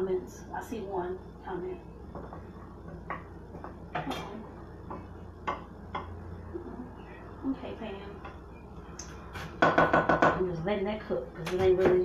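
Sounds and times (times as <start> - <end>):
low steady hum: 0.0 - 12.0
spatula knocking against pan: 4.8 - 6.2, 9.6 - 10.4.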